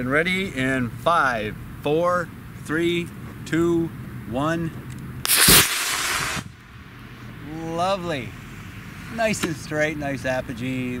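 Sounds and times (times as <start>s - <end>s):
model rocket rushing hiss: 5.3s - 6.6s.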